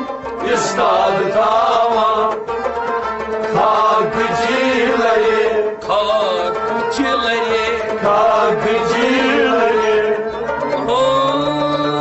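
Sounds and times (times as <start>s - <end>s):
group of men singing: 0.0s - 2.5s, 3.5s - 12.0s.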